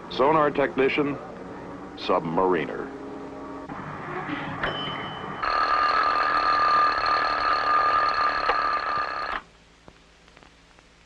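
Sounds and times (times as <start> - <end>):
alarm clock ringing: 4.8 - 9.4.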